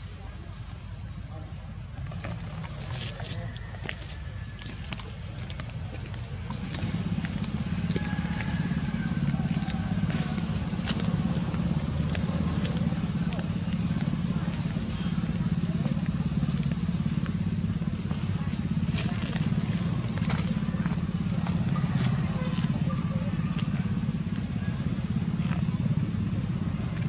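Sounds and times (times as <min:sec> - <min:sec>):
small engine humming: 0:01.3 - 0:27.0.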